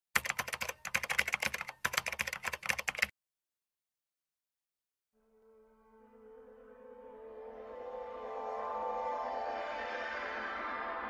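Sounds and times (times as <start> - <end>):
rapid keyboard typing: 0.2 - 3.1.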